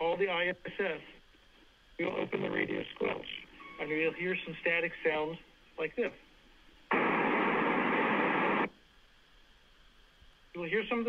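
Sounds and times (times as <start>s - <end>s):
radio static hiss: 0.0s - 8.8s, 10.4s - 11.0s.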